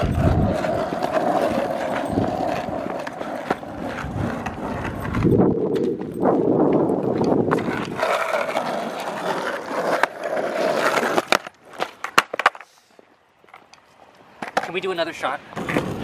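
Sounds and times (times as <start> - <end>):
skateboard clacking on pavement: 0.0 - 12.7, 14.4 - 16.0
skateboard wheels rolling on asphalt: 0.0 - 16.0.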